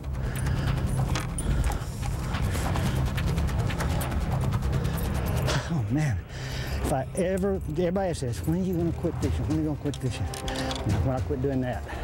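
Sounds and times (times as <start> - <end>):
man breathing hard: 0.0 - 6.9
low background music: 0.0 - 12.0.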